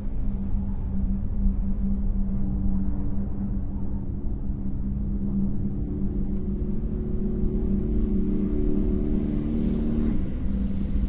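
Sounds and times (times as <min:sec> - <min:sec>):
car engine droning: 0:00.0 - 0:11.0.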